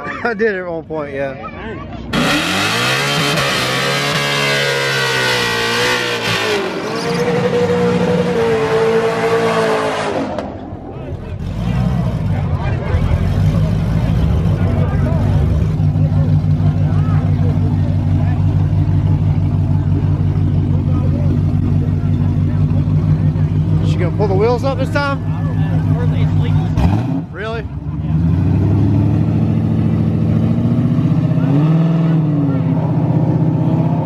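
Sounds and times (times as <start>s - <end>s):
tires squealing: 2.0s - 10.6s
car engine idling: 10.4s - 31.4s.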